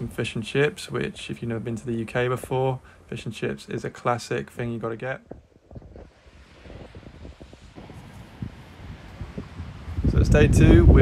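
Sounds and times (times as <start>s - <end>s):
wind buffeting microphone: 5.2s - 11.0s.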